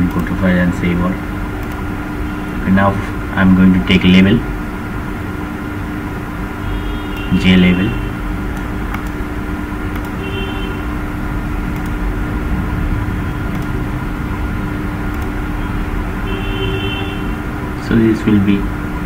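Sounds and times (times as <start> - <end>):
background hum and hiss: 0.0 - 19.0
faint clicks: 8.5 - 9.2, 9.9 - 10.2, 11.7 - 12.0.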